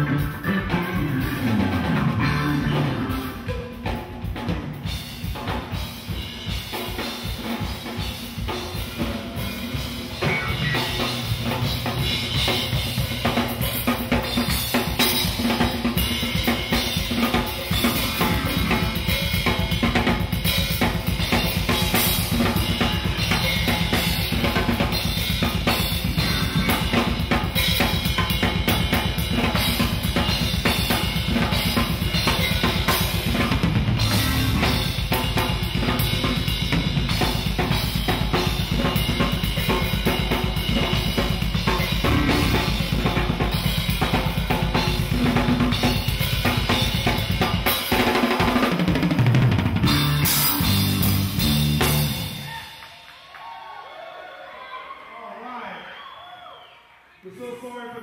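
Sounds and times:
drum kit played hard: 0.0s - 53.2s.

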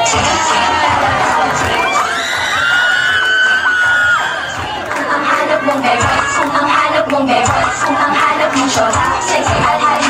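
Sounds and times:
crowd cheering and shouting: 0.0s - 10.0s
loud dance music: 0.0s - 10.0s.

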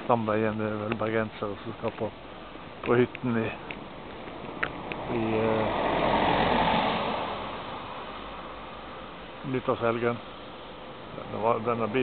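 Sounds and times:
car passing on snowy road: 3.8s - 8.8s.

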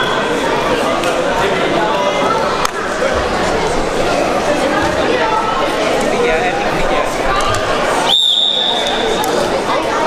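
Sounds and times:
crowd chatter: 0.0s - 10.0s
referee's whistle long blast: 8.1s - 8.9s.

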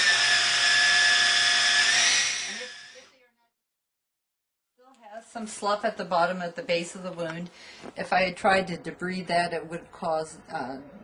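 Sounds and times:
small electric motor whining: 0.0s - 3.1s.

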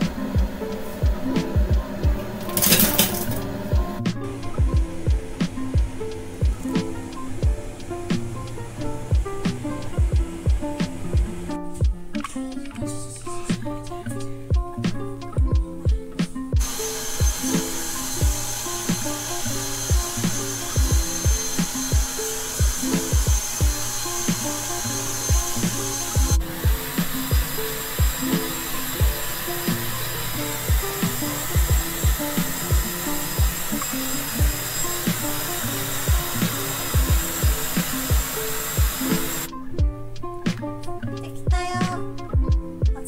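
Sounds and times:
hair dryer blowing: 0.0s - 11.5s, 16.6s - 39.5s
background music with beat: 0.0s - 43.0s.

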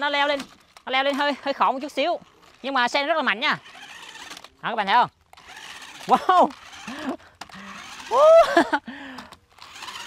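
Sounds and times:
toy car electric motors whirring: 0.0s - 10.0s
wheels slipping on wooden plank: 0.0s - 10.0s
man's loud exclamation: 8.1s - 8.6s.

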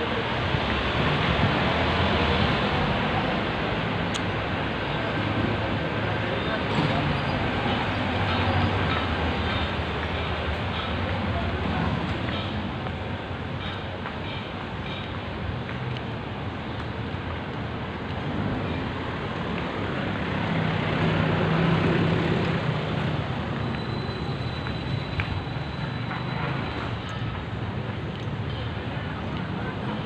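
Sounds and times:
street traffic rumble: 0.0s - 30.0s.

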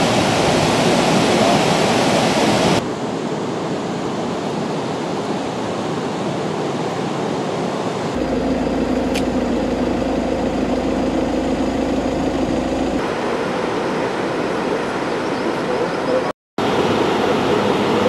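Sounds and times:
low hum: 8.2s - 14.1s.

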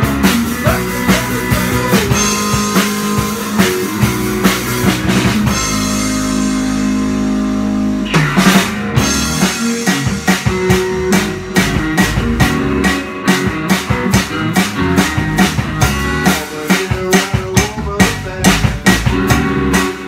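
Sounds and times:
drum kit playing: 0.0s - 20.0s
electric guitar: 0.0s - 20.0s.

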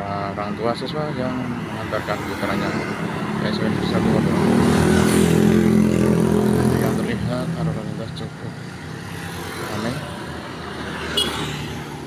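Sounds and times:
car and motorcycles passing: 0.0s - 12.0s.

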